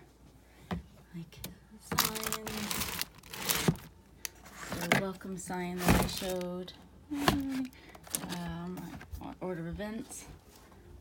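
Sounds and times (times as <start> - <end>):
paper and packaging rustling: 1.9 - 9.2.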